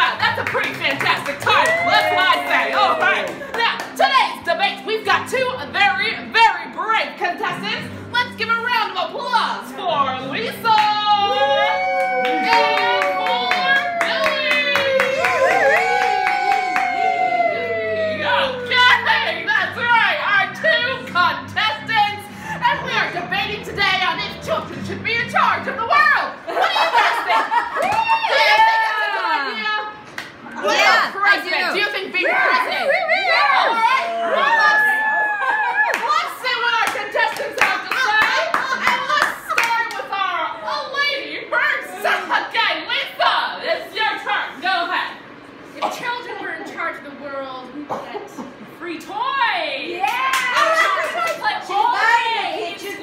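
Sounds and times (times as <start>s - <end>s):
hand clapping: 12.0s - 17.1s, 36.8s - 40.1s.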